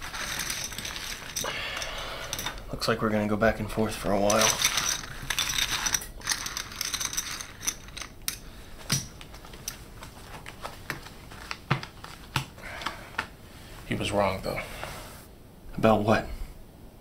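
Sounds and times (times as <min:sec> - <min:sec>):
poker chips clicking: 0:00.0 - 0:02.7, 0:04.2 - 0:09.8.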